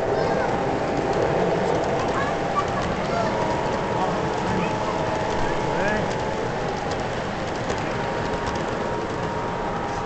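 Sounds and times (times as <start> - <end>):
model train running on track: 0.0 - 10.0.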